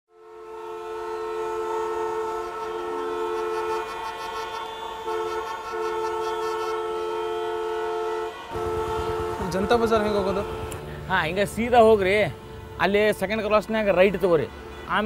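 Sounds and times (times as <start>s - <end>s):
steady multi-tone horn blast: 0.1s - 15.0s.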